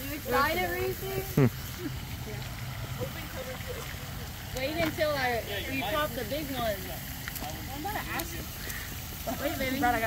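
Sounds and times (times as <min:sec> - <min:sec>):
sparkler fizzing: 0:00.0 - 0:02.5, 0:03.2 - 0:10.0.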